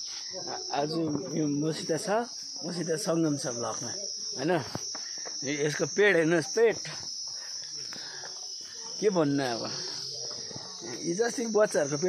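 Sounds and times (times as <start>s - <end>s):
high-pitched insect drone: 0.0s - 12.0s
men talking: 0.2s - 12.0s.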